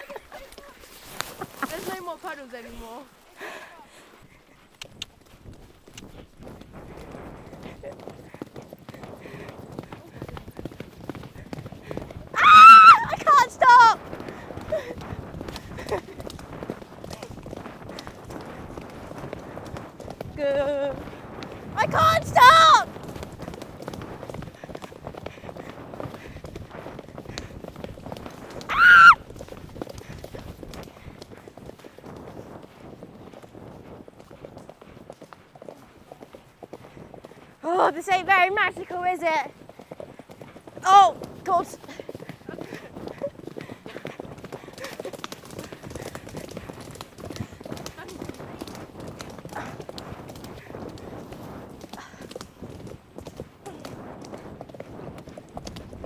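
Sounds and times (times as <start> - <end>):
horse hooves on dirt: 0.0 - 56.0.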